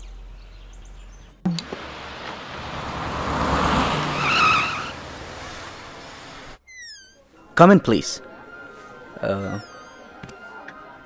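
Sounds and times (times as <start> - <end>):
car passing: 1.5 - 6.6
tire squeal: 2.6 - 7.2.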